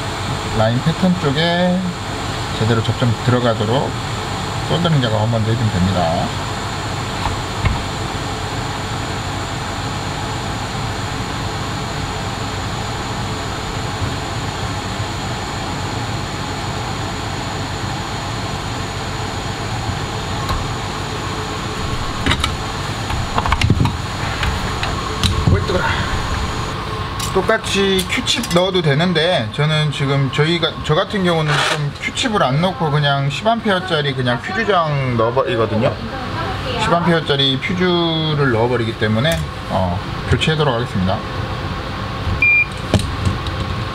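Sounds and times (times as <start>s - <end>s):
fume extractor fan airflow: 0.0s - 43.9s.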